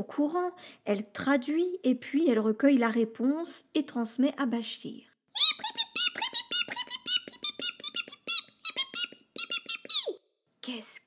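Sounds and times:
cartoon mouse squeaking: 5.3s - 10.2s.

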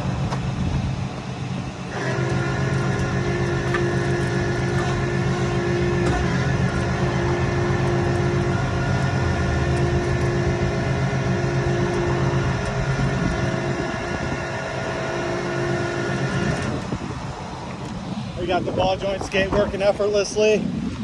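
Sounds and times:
truck engine running: 0.0s - 21.0s
hydraulic winch whine: 1.5s - 18.6s.

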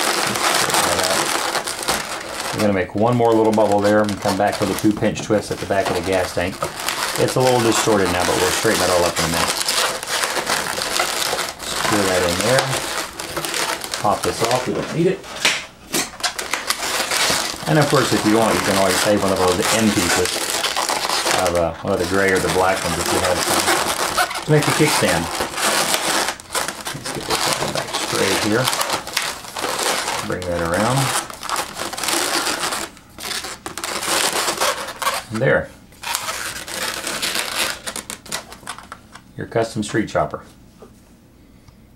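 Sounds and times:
rubber balloons squeaking: 0.0s - 15.5s, 16.1s - 38.9s.

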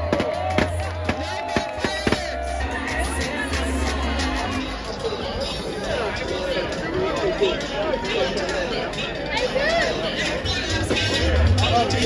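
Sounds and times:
crowd voices: 0.0s - 12.0s
loud music with heavy bass: 0.0s - 12.0s.

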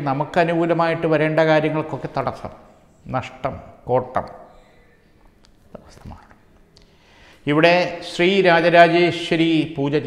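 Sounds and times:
man breathing faintly: 6.8s - 7.5s.

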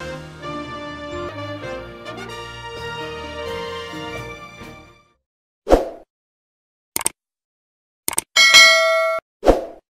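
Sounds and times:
bright bell-like chime: 8.4s - 9.2s.

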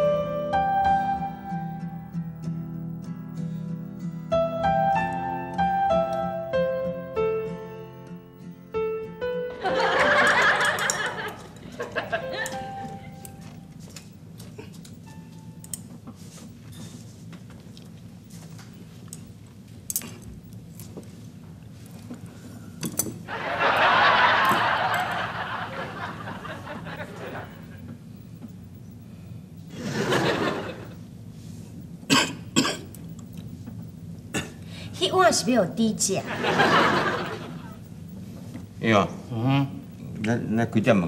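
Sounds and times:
sparse background music: 0.0s - 14.3s
man coughing: 32.1s - 32.9s, 34.3s - 34.6s.

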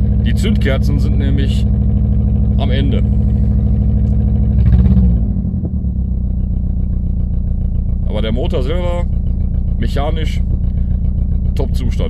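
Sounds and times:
car engine idling roughly: 0.0s - 12.0s.

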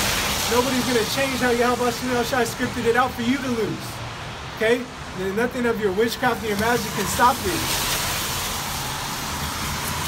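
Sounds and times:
passing traffic rumble: 0.0s - 10.0s
tyres hissing on wet street: 0.0s - 10.0s.

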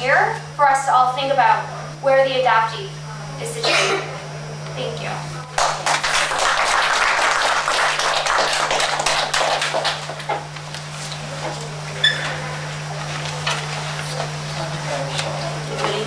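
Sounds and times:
audience applauding: 5.5s - 10.4s.

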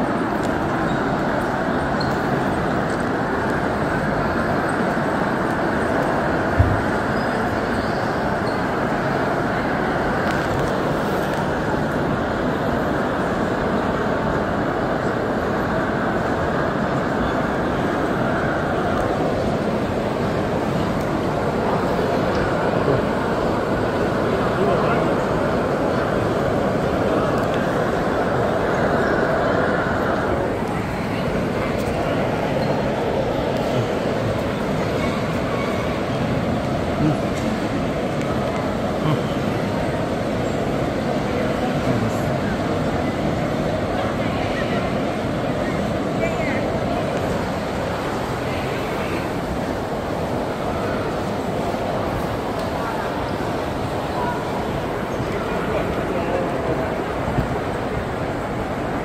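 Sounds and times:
distant voices hubbub: 0.0s - 59.0s
indistinct chatter of many people: 0.0s - 59.0s.

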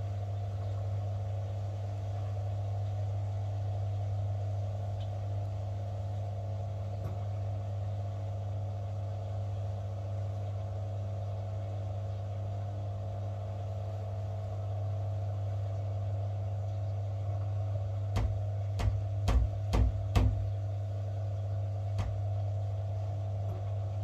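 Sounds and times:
washing machine drum spinning: 17.4s - 20.8s, 21.9s - 22.4s.

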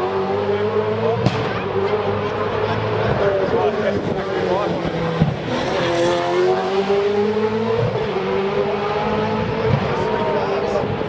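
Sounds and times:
car accelerating: 0.0s - 11.0s
race car engines: 0.0s - 11.0s.

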